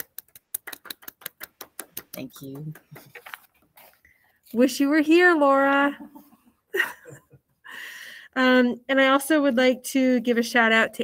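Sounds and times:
people clapping: 0.0s - 3.5s.

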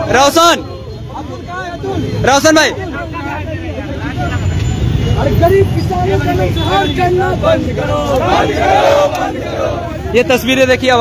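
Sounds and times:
men talking and calling out: 0.0s - 11.0s
road traffic rumble: 0.0s - 11.0s.

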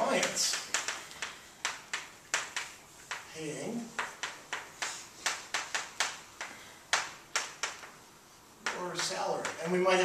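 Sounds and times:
chalk tapping and scratching: 0.0s - 10.0s.

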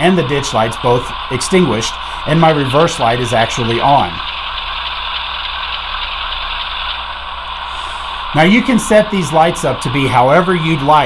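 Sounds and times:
model diesel engine drone: 0.0s - 11.0s.

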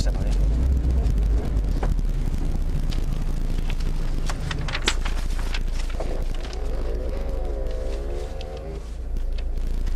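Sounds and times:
car engine rumbling from inside: 0.0s - 9.9s.

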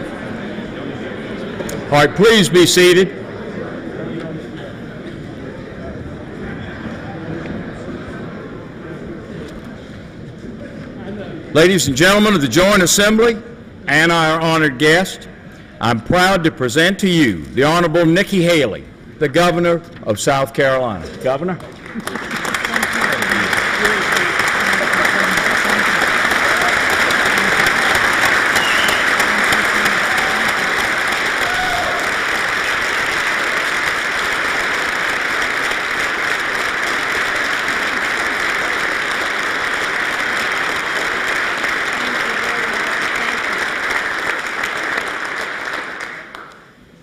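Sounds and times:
large crowd applauding: 21.6s - 46.7s.

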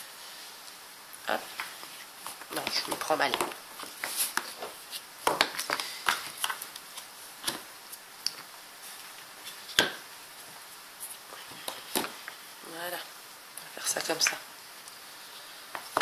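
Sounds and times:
paper sheets tapping and rustling: 1.5s - 10.6s.

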